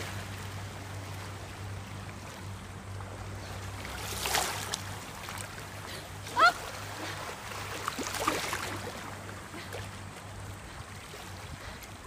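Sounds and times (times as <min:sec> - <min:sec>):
steady low hum: 0:00.0 - 0:12.0
swimmer splashing: 0:00.0 - 0:12.0
water lapping: 0:00.0 - 0:12.0.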